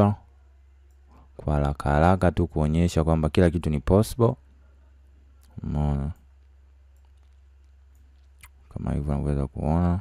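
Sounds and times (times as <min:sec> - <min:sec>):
steady low hum: 0:00.0 - 0:10.0.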